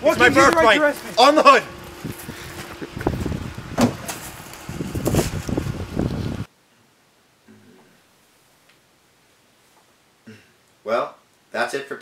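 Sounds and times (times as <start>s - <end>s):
handling noise: 0.0s - 6.2s.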